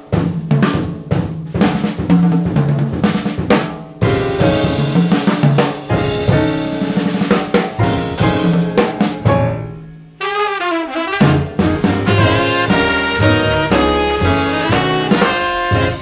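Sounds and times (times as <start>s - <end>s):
jazz drum kit playing: 0.0s - 16.0s.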